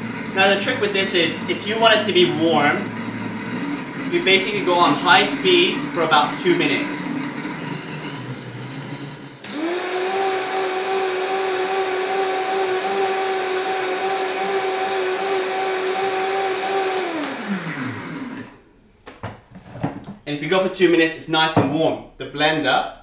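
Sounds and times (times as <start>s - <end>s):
blender running: 0.0s - 18.6s.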